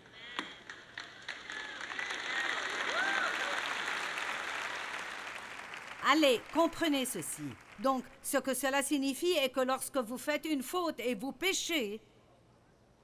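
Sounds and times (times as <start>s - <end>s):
audience applauding: 0.0s - 8.2s.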